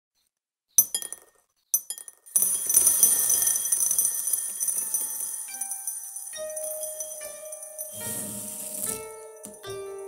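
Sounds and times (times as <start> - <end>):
beans clinking into a bowl: 0.8 - 9.6
high ringing from bowl: 2.2 - 10.0.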